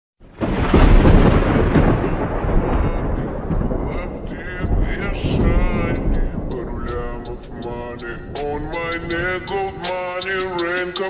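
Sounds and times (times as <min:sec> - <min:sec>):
thunder crack and rumble: 0:00.2 - 0:11.0.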